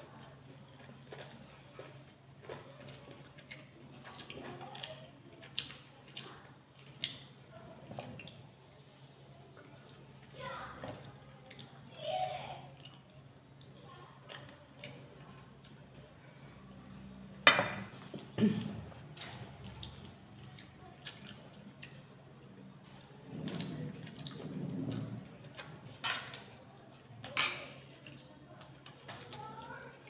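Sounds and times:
chewing and mouth noises: 0.2s - 8.5s, 18.0s - 29.8s.

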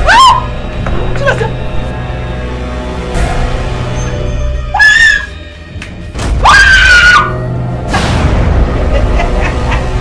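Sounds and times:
film music: 0.0s - 10.0s
woman screaming: 4.7s - 5.4s, 6.4s - 7.4s.

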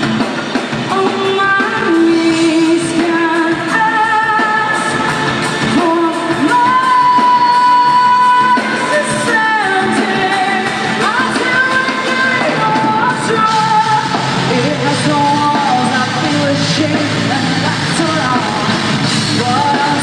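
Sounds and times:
drums: 0.0s - 20.0s
electric guitars: 0.0s - 20.0s
woman singing: 0.8s - 20.0s.

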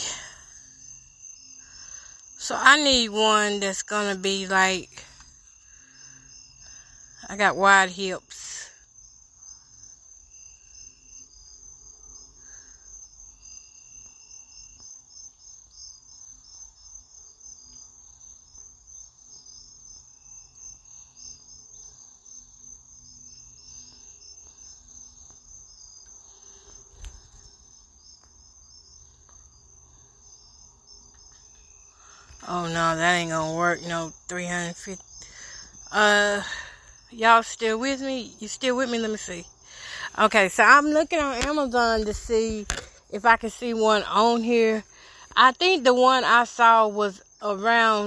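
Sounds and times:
crickets chirring: 0.0s - 48.0s.

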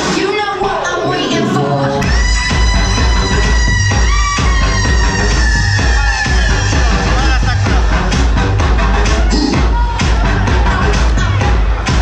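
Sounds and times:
dance music over club sound system: 0.0s - 12.0s
heavy pulsing bass beat: 2.0s - 12.0s.

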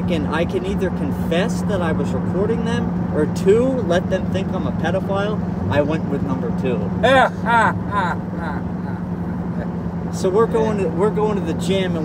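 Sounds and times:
car cabin drone: 0.0s - 12.0s
men laughing: 7.0s - 9.9s.

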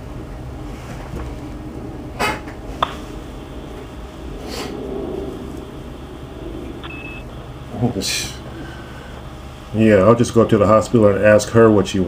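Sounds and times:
telephone line hum and hiss: 0.0s - 12.0s
brief high beep: 6.8s - 7.2s.

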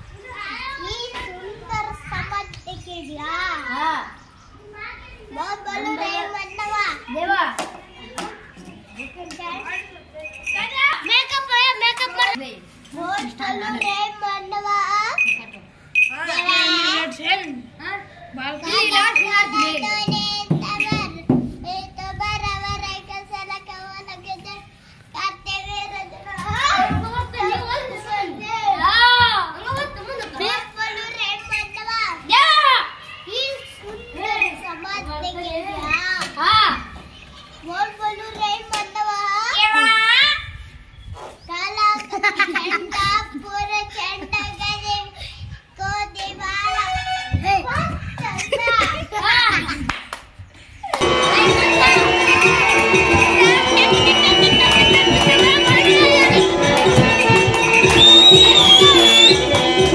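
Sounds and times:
young boy talking: 0.1s - 8.4s, 16.1s - 32.6s, 33.2s - 36.9s, 41.5s - 49.9s
boy singing wavering notes: 51.0s - 59.9s.

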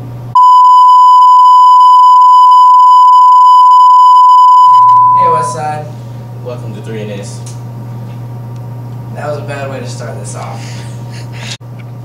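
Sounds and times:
steady test tone beep: 0.4s - 5.7s.

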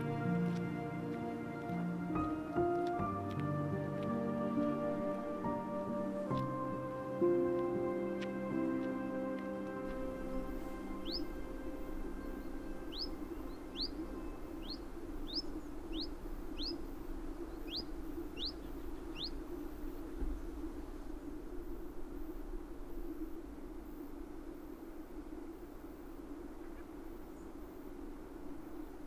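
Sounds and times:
low background rush: 0.0s - 29.0s
bird chirping: 10.2s - 19.5s.

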